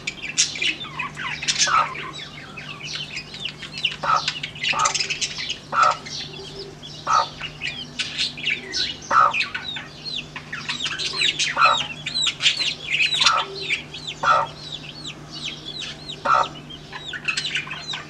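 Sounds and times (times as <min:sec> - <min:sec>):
chicks peeping: 0:00.0 - 0:18.0
hen clucking: 0:00.6 - 0:18.0.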